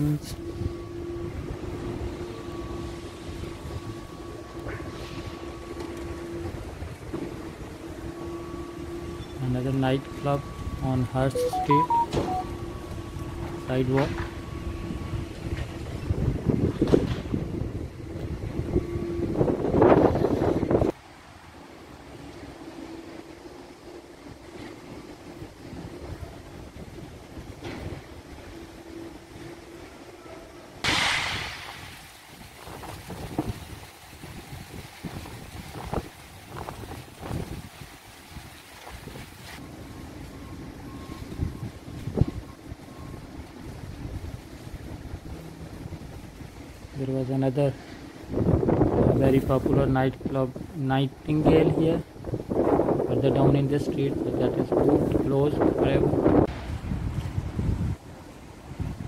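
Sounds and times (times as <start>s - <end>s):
wind buffeting microphone: 14.5s - 21.0s, 32.3s - 39.4s, 48.0s - 59.0s.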